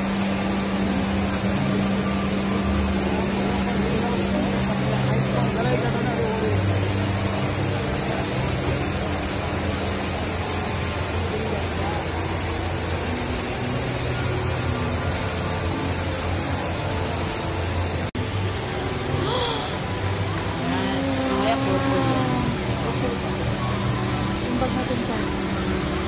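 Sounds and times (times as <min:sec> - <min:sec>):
indoor waterfall rushing: 0:00.0 - 0:26.0
crowd chatter: 0:20.4 - 0:25.6.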